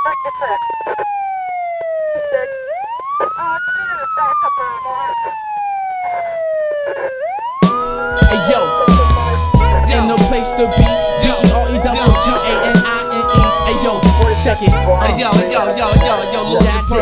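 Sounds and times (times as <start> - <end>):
wailing siren: 0.0 - 17.0
hip-hop drums and music: 7.6 - 17.0
man talking: 8.1 - 17.0.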